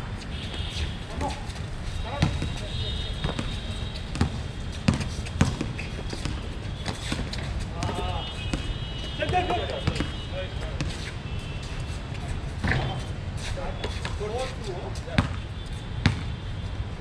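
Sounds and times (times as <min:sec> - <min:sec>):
basketball bouncing on hard court: 0:02.2 - 0:02.6, 0:03.2 - 0:10.2, 0:12.6 - 0:13.0, 0:15.2 - 0:15.4, 0:16.0 - 0:16.4
players calling out: 0:05.8 - 0:11.1.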